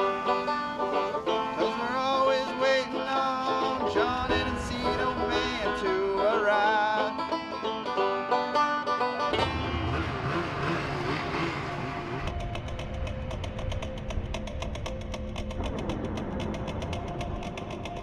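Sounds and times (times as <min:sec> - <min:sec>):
low steady rumble: 0:00.0 - 0:07.7, 0:09.3 - 0:18.0
banjo bluegrass music: 0:00.0 - 0:12.4.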